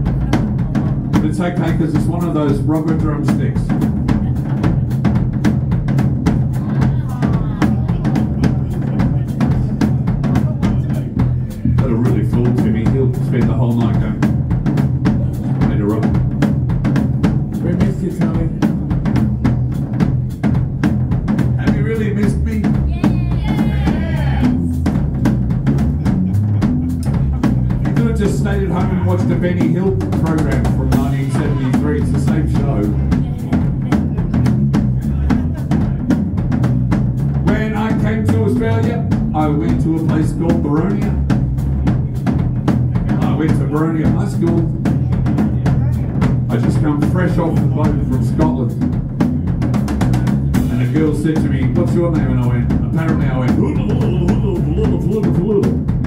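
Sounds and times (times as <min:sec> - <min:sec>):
drum kit beat: 0:00.0 - 0:56.0
electric bass guitar: 0:00.0 - 0:56.0.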